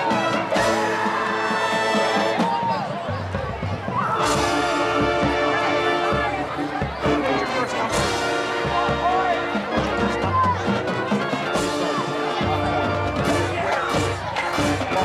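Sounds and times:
crowd chatter: 0.0 - 15.0
marching band playing: 0.0 - 15.0.

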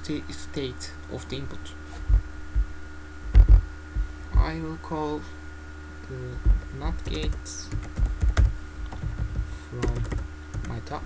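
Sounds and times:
steady electrical hum: 0.0 - 11.0
low thumps on desk: 2.0 - 4.5, 6.4 - 6.8, 7.8 - 9.6.

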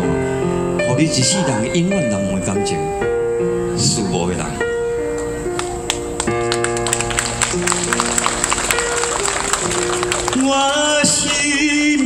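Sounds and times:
keyboard chords: 0.0 - 12.0.

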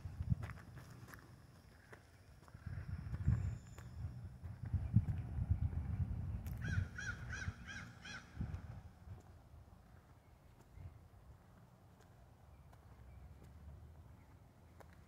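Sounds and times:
rumble of footsteps: 0.0 - 15.0
crow cawing: 6.6 - 8.4.

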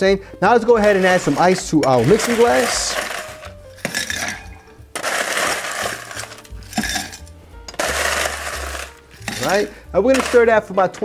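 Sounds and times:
ice cubes clinking in glass: 0.8 - 11.0.

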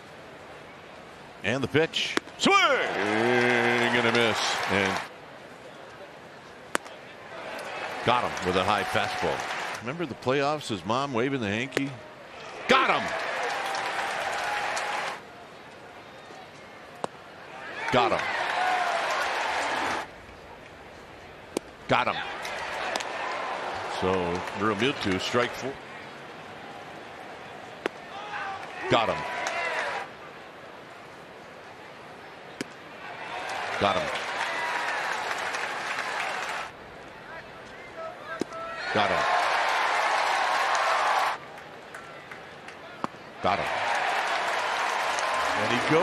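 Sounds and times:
crowd cheering: 2.4 - 5.1, 7.2 - 10.2, 11.8 - 15.2, 17.4 - 20.1, 21.9 - 30.1, 32.8 - 37.4, 38.3 - 46.0.

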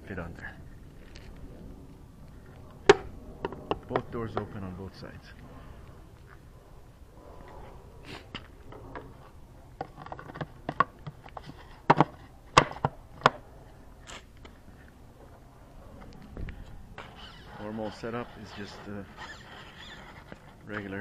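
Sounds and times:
hands handling model airplane: 8.3 - 21.0.

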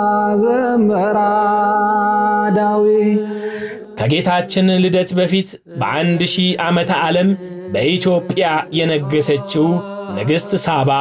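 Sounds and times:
voice chanting held note: 3.4 - 11.0.

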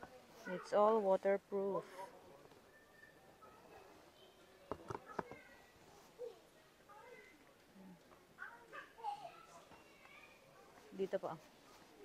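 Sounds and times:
faint background voices: 1.6 - 12.0.

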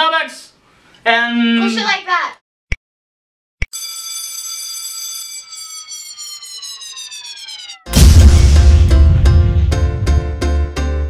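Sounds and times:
falling bomb whistle: 5.3 - 8.6
intro music: 6.2 - 11.0
explosion boom: 7.4 - 10.4.

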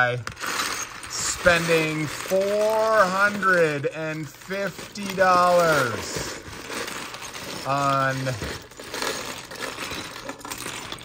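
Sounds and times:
small plastic parts clattering: 0.0 - 11.0.

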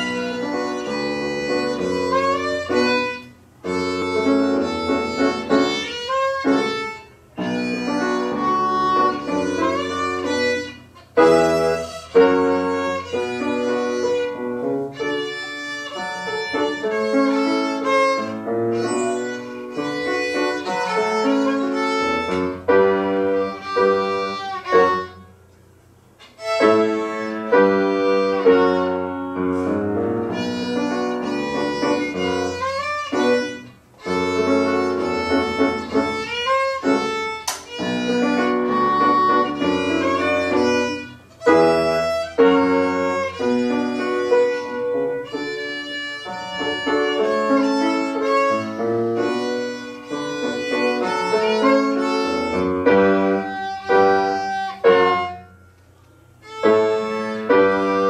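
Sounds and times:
violin melody: 0.0 - 25.4, 26.2 - 55.7, 56.4 - 58.0
piano accompaniment: 0.0 - 58.0.

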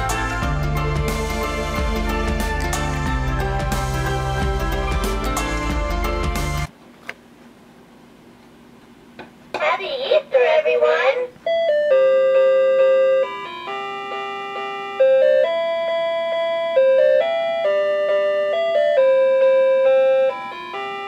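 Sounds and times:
simple electronic tune: 11.5 - 21.0.

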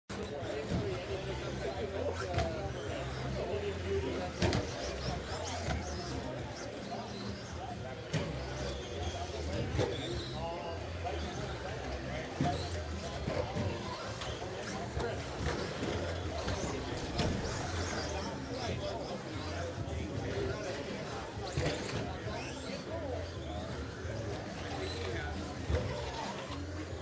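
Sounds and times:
indistinct talking: 0.1 - 27.0.

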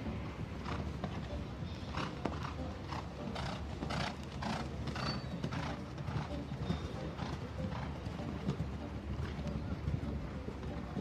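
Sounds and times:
horse hoofbeats on sand: 0.5 - 11.0.

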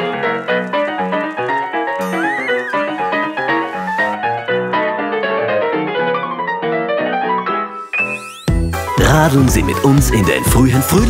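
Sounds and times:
bouncing piano music: 0.0 - 11.0
horse whinny: 0.2 - 4.8.

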